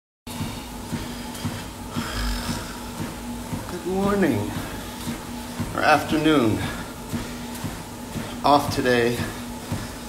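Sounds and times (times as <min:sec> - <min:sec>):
footsteps on treadmill: 0:00.3 - 0:10.0
treadmill motor hum: 0:00.3 - 0:10.0.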